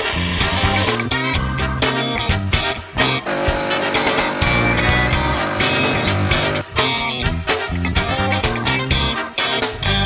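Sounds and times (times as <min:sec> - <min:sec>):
music with guitar: 0:00.0 - 0:10.0.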